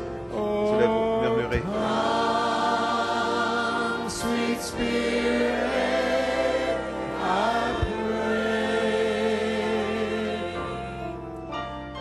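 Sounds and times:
congregation singing: 0.0s - 12.0s.

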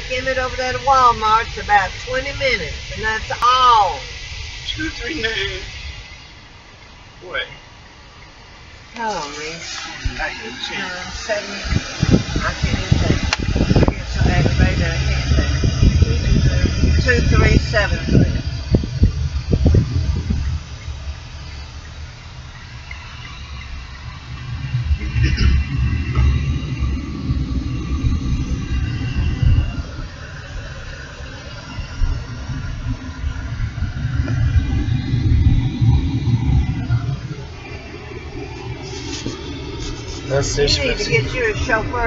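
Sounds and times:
engine and tyre rumble: 0.0s - 42.0s.

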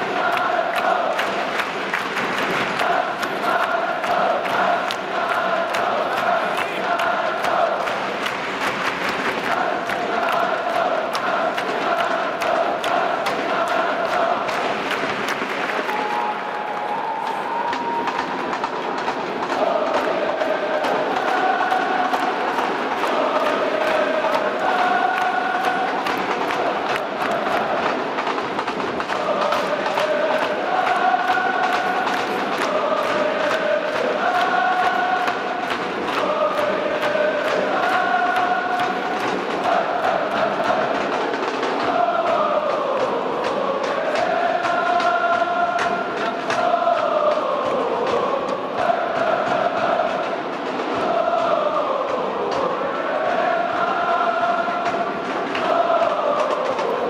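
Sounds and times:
crowd chanting a song: 0.0s - 57.0s.

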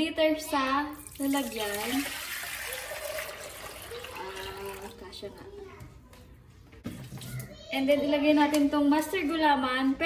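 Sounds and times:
water pouring into metal saucepan: 0.9s - 5.2s.

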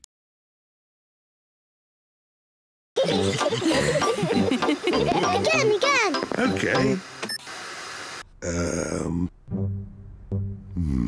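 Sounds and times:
television static hiss: 3.0s - 8.2s.

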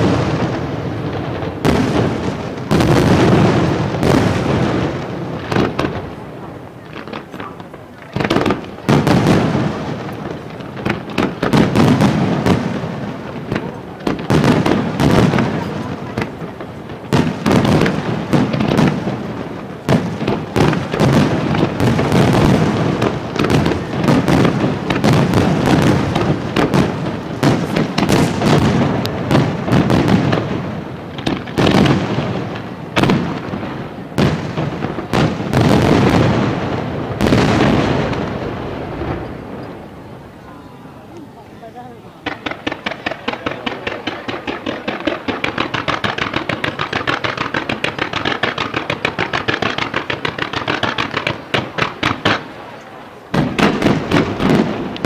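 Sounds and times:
firework shells bursting: 0.0s - 40.0s, 42.2s - 52.6s.

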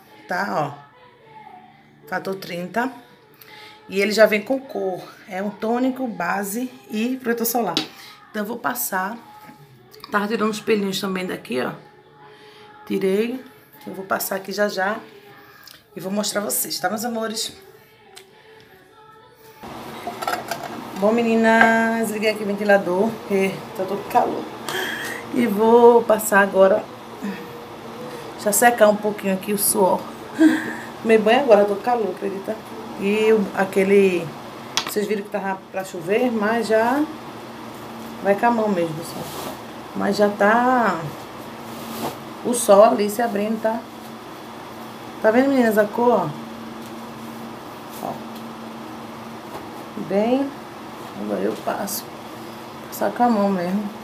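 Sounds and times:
electric fan whooshing: 19.6s - 54.0s.

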